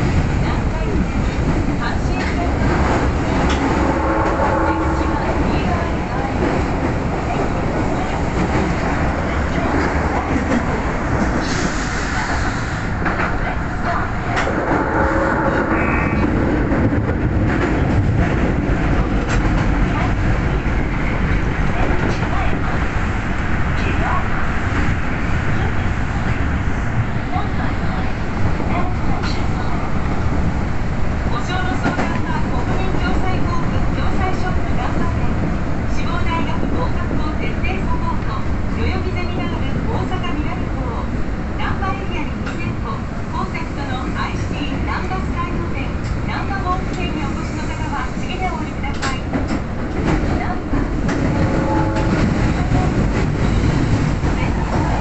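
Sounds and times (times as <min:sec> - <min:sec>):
rail clicks: 0:00.0 - 0:55.0
subway train rumbling: 0:00.0 - 0:55.0.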